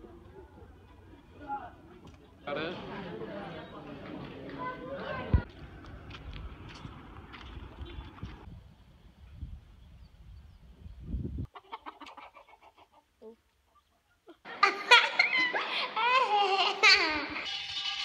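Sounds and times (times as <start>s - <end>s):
children's voices: 4.4s - 5.5s, 14.6s - 17.5s
chickens clucking: 11.5s - 14.6s.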